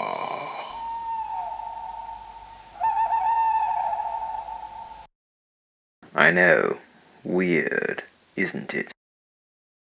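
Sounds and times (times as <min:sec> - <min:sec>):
eerie sustained high tones: 0:00.0 - 0:05.1
wavering tone sinking in pitch: 0:00.0 - 0:05.1.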